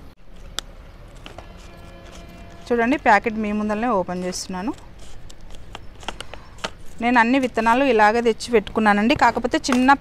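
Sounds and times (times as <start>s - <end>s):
scissors snipping plastic packets: 0.4s - 2.7s, 4.2s - 10.0s.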